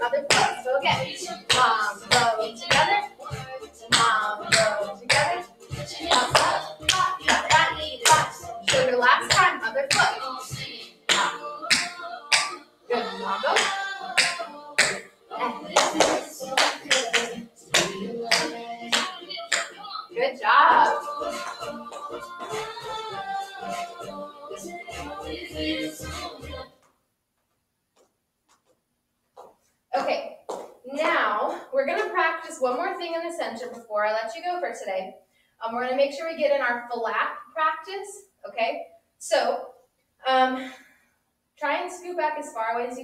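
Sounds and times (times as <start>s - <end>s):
woman speaking: 0.0s - 3.0s, 3.9s - 10.4s, 12.9s - 13.7s, 19.9s - 21.2s, 29.9s - 40.7s, 41.6s - 43.0s
music with singing: 0.0s - 26.9s
hand claps: 0.3s - 0.5s, 1.5s - 3.0s, 6.1s - 10.2s, 11.1s - 12.6s, 13.6s - 15.0s, 15.7s - 19.8s
tap shoes on floor: 6.1s - 10.2s, 11.1s - 12.6s, 13.6s - 15.0s, 26.8s - 29.7s, 30.4s - 30.8s.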